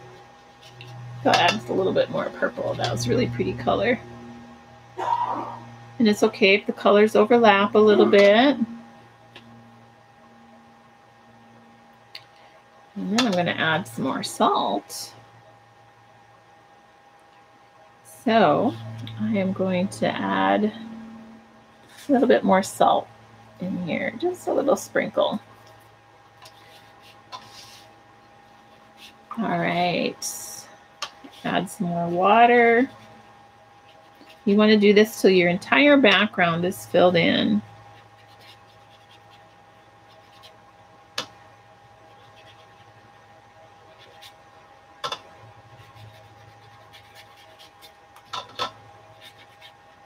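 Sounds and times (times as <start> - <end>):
faint steady hum: 0.0 - 50.0
paintbrush stroking on paper: 26.6 - 27.9.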